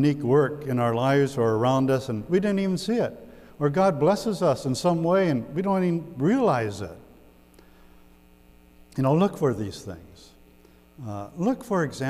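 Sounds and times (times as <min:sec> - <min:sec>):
person speaking: 0:00.0 - 0:07.1, 0:08.9 - 0:10.4, 0:11.0 - 0:12.0
low electrical mains hum: 0:00.0 - 0:12.0.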